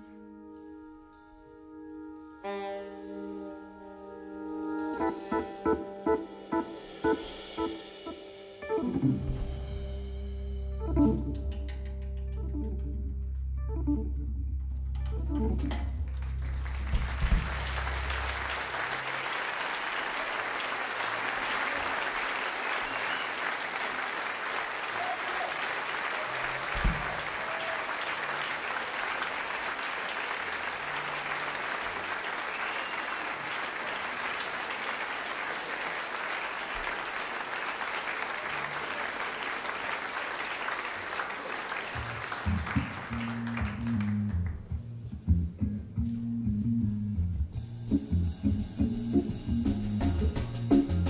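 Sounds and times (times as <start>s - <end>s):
organ bass notes: 0.0s - 19.3s, 42.0s - 51.0s
audience applauding: 15.6s - 44.7s.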